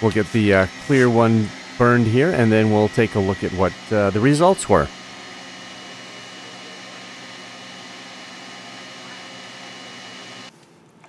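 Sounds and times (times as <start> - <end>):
laser engraver humming and hissing: 0.0 - 10.5.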